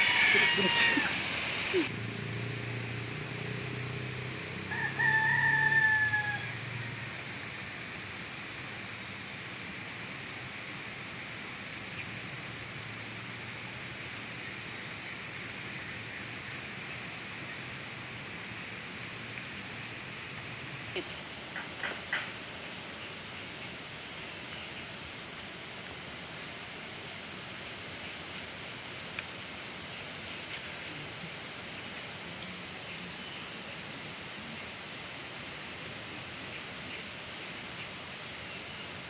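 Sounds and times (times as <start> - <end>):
rooster crowing: 0.0 - 1.9, 4.6 - 7.1
background hiss: 0.0 - 39.0.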